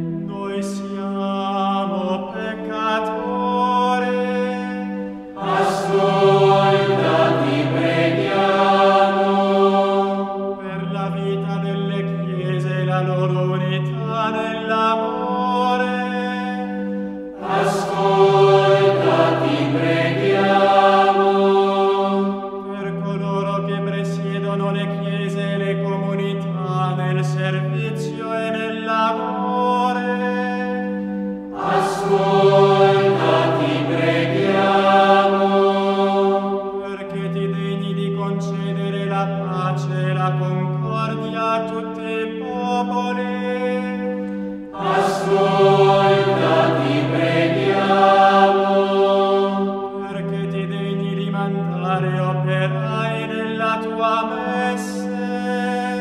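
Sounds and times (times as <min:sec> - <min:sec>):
sung chant: 0:00.0 - 0:30.9, 0:31.5 - 0:56.0
low drone: 0:05.4 - 0:10.8, 0:17.3 - 0:22.8, 0:31.5 - 0:37.0, 0:44.7 - 0:50.2.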